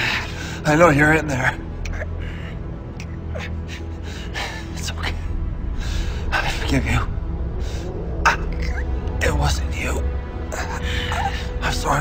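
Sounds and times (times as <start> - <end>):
low droning music: 0.0 - 12.0.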